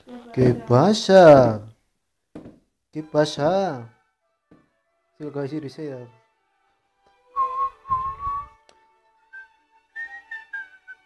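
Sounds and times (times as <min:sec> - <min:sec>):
person whistling a tune: 0:07.4 - 0:08.6, 0:09.3 - 0:11.0.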